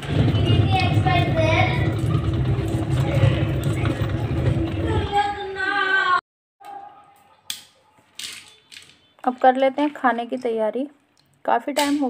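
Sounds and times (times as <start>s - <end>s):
washing machine churning: 0.0s - 5.2s.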